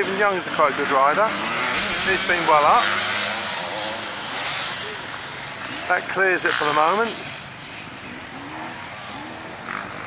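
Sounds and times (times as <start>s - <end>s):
distant motorcycle engines droning: 0.0s - 10.0s.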